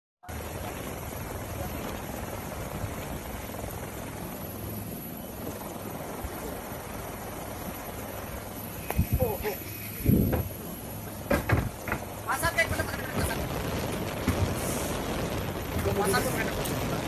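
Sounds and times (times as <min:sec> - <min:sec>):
helicopter cabin noise with low hum: 0:00.3 - 0:17.0.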